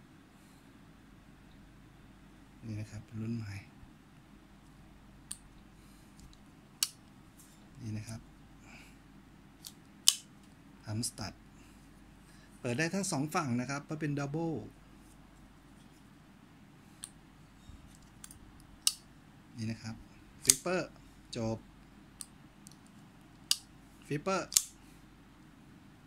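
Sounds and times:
folding knife clicks: 0:09.6 - 0:10.3, 0:20.4 - 0:20.7, 0:24.5 - 0:24.8
knife blade locking click: 0:24.5 - 0:24.8.

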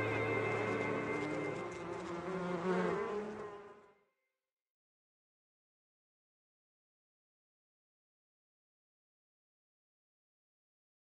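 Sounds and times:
bees buzzing: 0:00.0 - 0:03.6.

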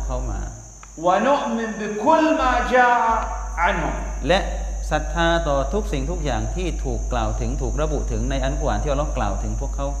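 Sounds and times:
high-pitched whine: 0:00.0 - 0:10.0
low steady hum: 0:00.0 - 0:10.0.

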